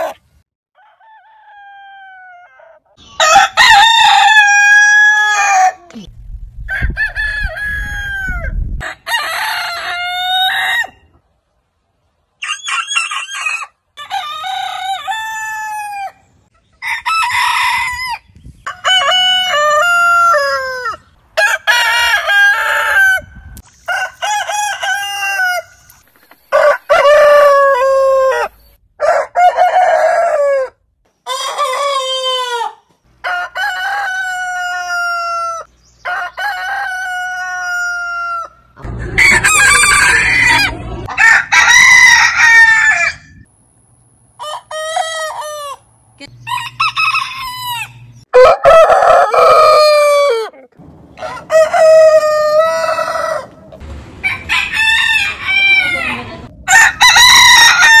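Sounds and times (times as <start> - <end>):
roosters crowing: 0.8 - 5.8, 6.6 - 11.1, 12.4 - 43.5, 44.4 - 58.0.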